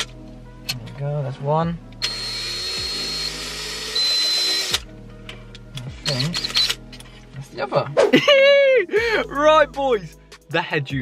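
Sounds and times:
power drill running: 0:02.0 - 0:04.9.

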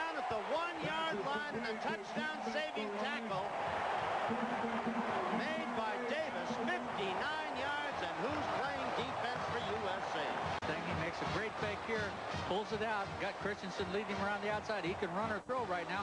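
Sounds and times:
stadium crowd noise: 0:00.0 - 0:16.0.

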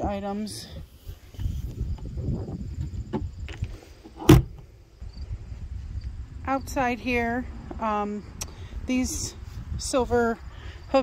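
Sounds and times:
low rumble on microphone: 0:00.0 - 0:11.0
door shutting with thud: 0:04.2 - 0:04.6.

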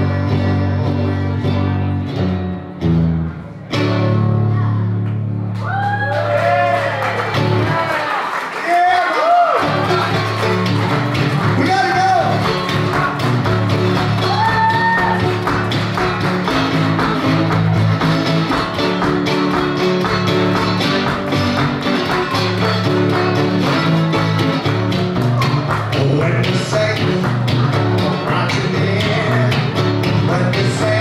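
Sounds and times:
resonator guitar chords: 0:00.0 - 0:05.6, 0:09.6 - 0:31.0.

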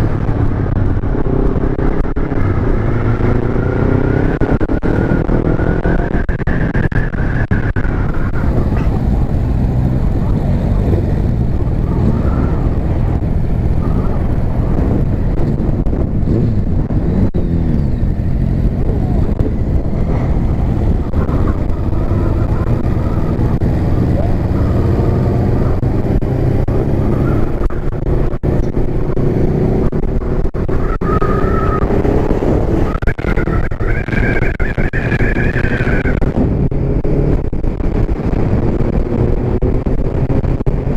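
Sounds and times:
motorcycle engine running: 0:00.0 - 0:40.9
wind noise on microphone: 0:00.0 - 0:40.9.

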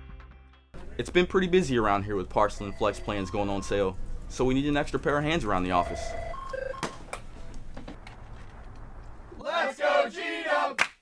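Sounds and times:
electronic keypad beeps: 0:02.6 - 0:03.8, 0:05.8 - 0:06.9.

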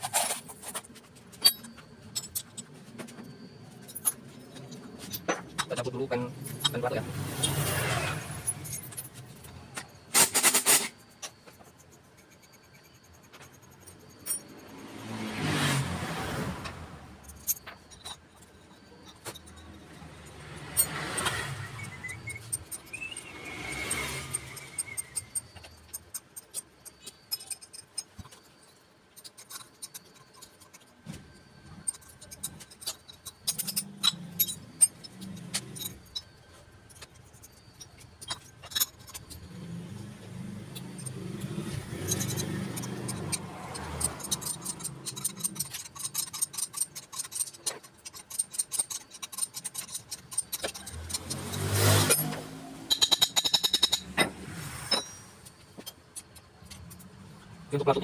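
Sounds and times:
tools and metal parts clinking: 0:00.0 - 0:58.0.

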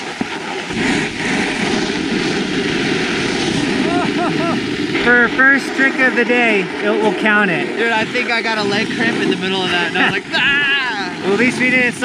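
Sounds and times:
snowboard sliding over snow: 0:00.0 - 0:12.0
wind on microphone: 0:00.0 - 0:12.0
person laughing: 0:03.8 - 0:04.7, 0:09.7 - 0:11.2.

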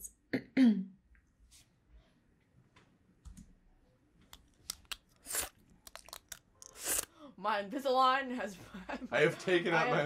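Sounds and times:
wet clicks of aligners: 0:04.3 - 0:06.7
crunchy slurpy noise: 0:04.7 - 0:07.1.

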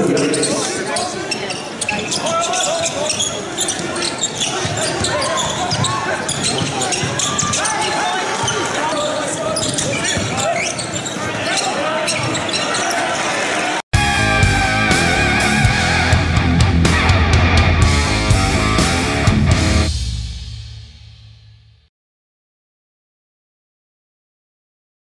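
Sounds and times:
sneakers squeaking: 0:00.0 - 0:13.4
players and crowd voices: 0:00.0 - 0:19.3.

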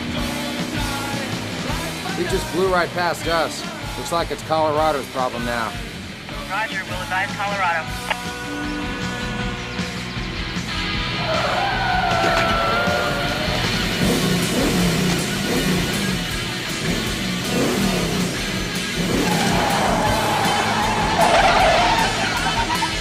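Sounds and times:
rock music: 0:00.0 - 0:23.0
car engine at speed: 0:10.8 - 0:23.0
tyres squealing: 0:19.1 - 0:22.7.

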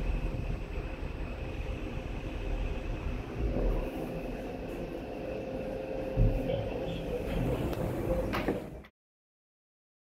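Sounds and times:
low rumble: 0:00.0 - 0:08.3
elevator doors sliding closed: 0:00.0 - 0:08.9.

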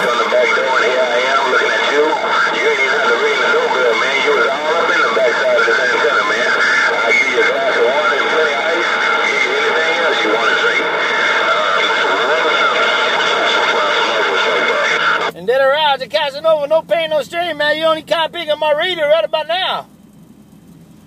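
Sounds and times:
garbled radio voices: 0:00.0 - 0:19.9
loud radio static: 0:00.0 - 0:19.9.

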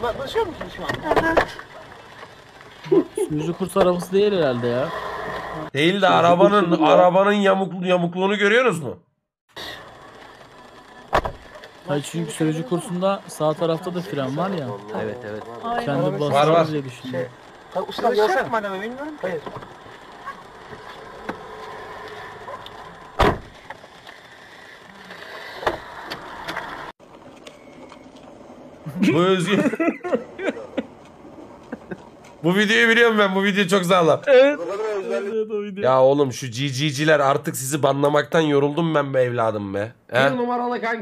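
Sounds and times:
car road and engine noise: 0:00.0 - 0:06.4, 0:09.5 - 0:35.0.

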